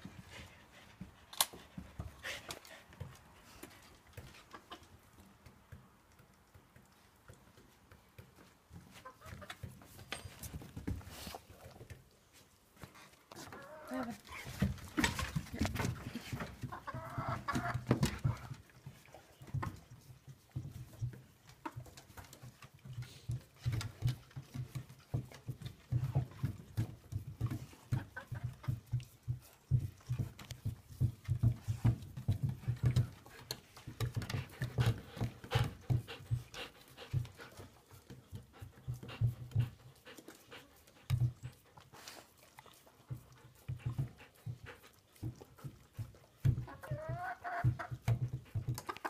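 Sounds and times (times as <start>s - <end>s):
dogs licking ice: 1.3s - 49.0s.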